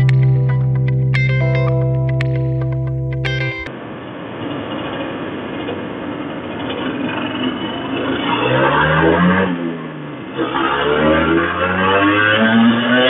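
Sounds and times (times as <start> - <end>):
two-stroke motorcycle engine revving: 8.4 - 13.0.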